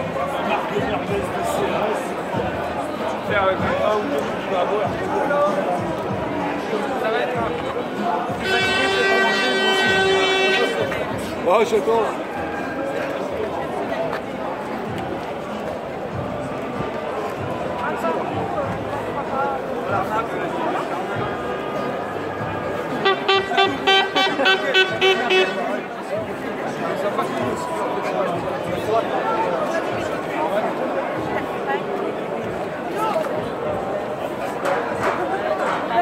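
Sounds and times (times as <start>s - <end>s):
marchers' voices chattering: 0.0s - 36.0s
plastic horn tooting: 8.4s - 11.0s, 23.0s - 25.8s.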